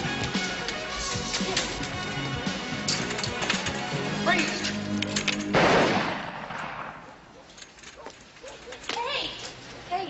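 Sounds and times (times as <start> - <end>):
film soundtrack music: 0.0 - 5.6
loud bang: 5.5 - 7.1.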